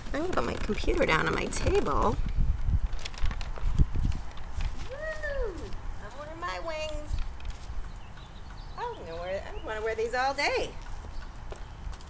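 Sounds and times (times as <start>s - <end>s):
woman speaking: 0.0s - 2.2s, 5.2s - 7.2s, 8.8s - 10.8s
low outdoor rumble: 0.0s - 12.0s.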